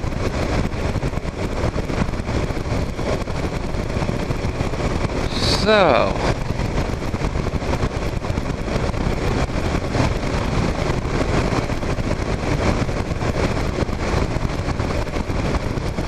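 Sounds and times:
motorcycle engine running: 0.0 - 16.0
wind and road noise: 0.0 - 16.0
wind hitting microphone: 0.0 - 16.0.

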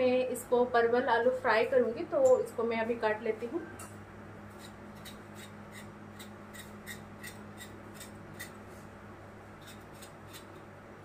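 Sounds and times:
knife cutting vegetable: 4.5 - 8.8, 9.6 - 10.6.

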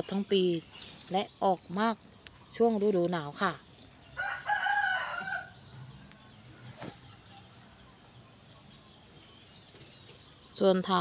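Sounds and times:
rooster crowing: 4.2 - 5.7.

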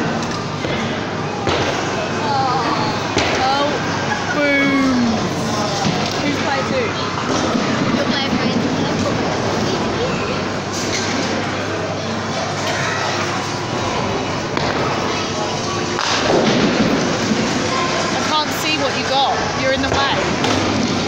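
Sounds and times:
background chatter: 0.0 - 21.0.

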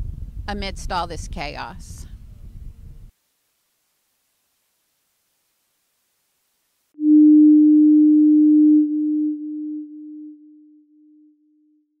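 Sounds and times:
electronic tone with echoes: 7.0 - 11.4.

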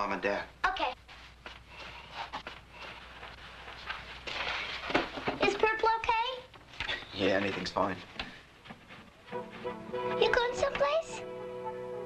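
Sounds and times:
girl asking a question: 5.4 - 6.5, 10.1 - 11.2.

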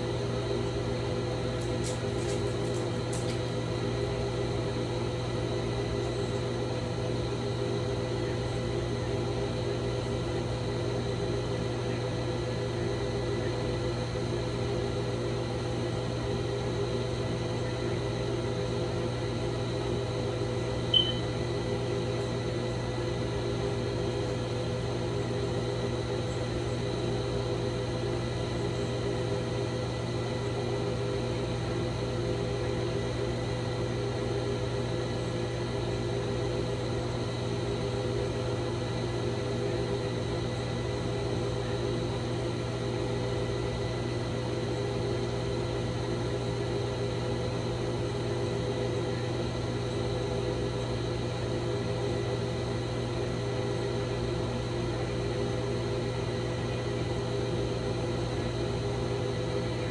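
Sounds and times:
steady low hum: 0.0 - 59.9
faint held higher tones: 20.9 - 21.3.

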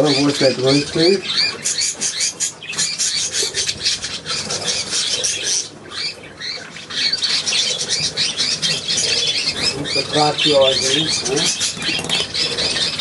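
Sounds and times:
budgerigars chattering: 0.0 - 13.0.

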